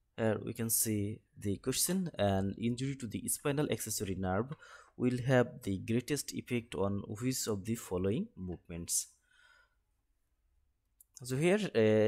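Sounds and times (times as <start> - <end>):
faint soft breath: 4.6 - 5.0, 9.2 - 9.8.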